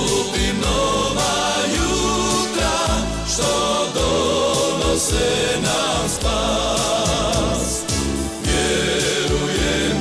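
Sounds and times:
instrumental backing music: 0.0s - 10.0s
men singing together: 0.0s - 10.0s.

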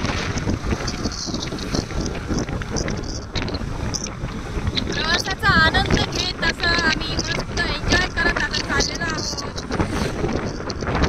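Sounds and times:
road noise: 0.0s - 11.0s
wind rushing over microphone: 0.0s - 11.0s.

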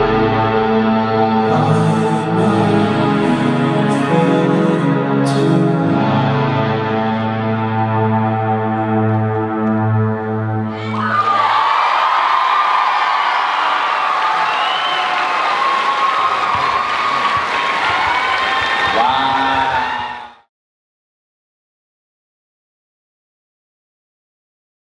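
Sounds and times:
droning dance music chord: 0.0s - 5.2s
crowd cheering and whooping: 10.7s - 20.5s
audience applause: 10.8s - 20.3s.

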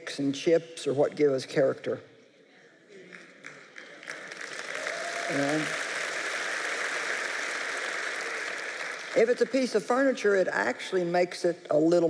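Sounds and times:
large audience applauding: 3.0s - 10.1s.

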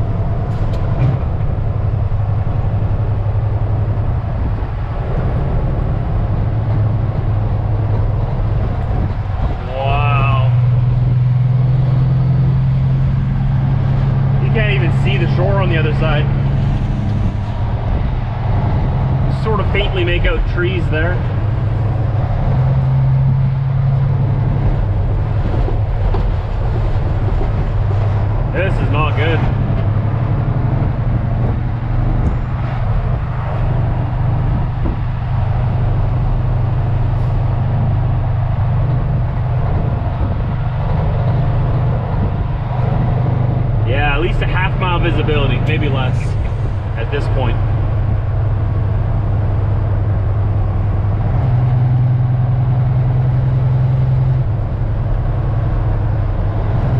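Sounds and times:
road noise: 0.0s - 56.9s
truck diesel engine drone: 0.0s - 56.9s.

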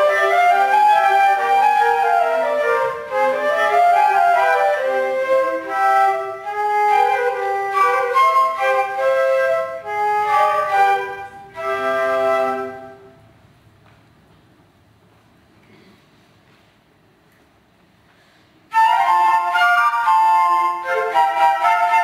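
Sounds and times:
flutes playing in harmony: 0.0s - 13.2s, 18.7s - 22.0s.

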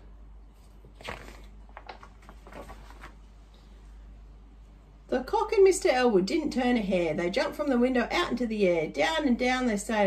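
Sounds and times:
paper pages rustling: 0.5s - 3.4s.

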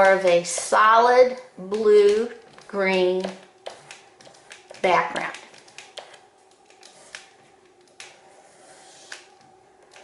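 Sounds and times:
crayon scratching on paper: 8.3s - 9.3s.

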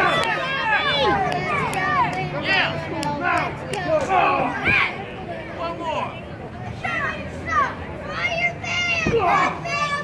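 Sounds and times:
children shouting: 0.0s - 5.2s, 6.7s - 10.0s.

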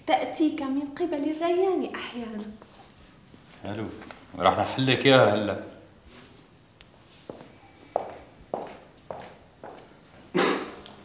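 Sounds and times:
footsteps on a hard floor: 6.2s - 11.0s.

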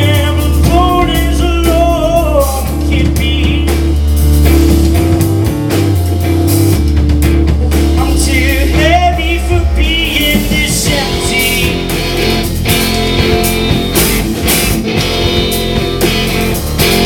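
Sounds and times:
deep held bass line: 0.0s - 17.0s
drum kits: 0.0s - 17.0s
electric guitar: 0.0s - 17.0s.

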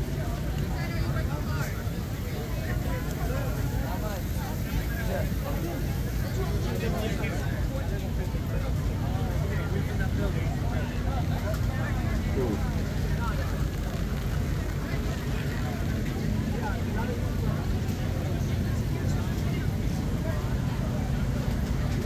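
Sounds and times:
crowd chatter: 0.0s - 22.0s
low machine rumble: 0.0s - 22.0s.

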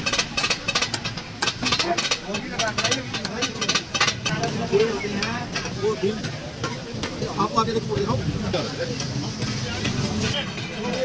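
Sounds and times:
metal clicks on pan: 0.0s - 7.3s
meat sizzling on griddle: 0.0s - 11.0s.

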